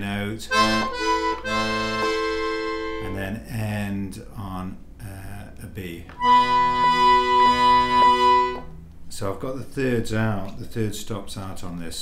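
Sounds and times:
button accordion chords: 0.5s - 3.2s, 6.2s - 8.7s.

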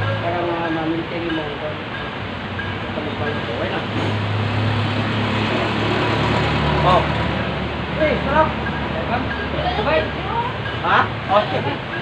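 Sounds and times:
street traffic noise: 0.0s - 12.0s
vehicle engine humming: 0.0s - 12.0s.

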